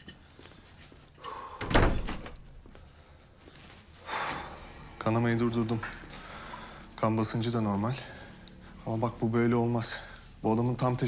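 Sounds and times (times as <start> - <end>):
wooden door slamming: 1.6 - 2.6.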